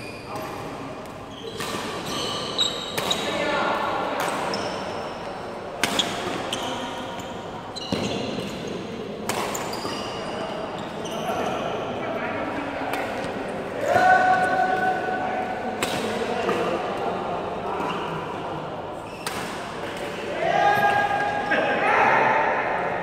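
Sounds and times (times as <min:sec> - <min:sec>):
shoes squeaking on court floor: 0:00.0 - 0:03.5, 0:04.4 - 0:05.3, 0:05.9 - 0:11.8, 0:19.0 - 0:19.7.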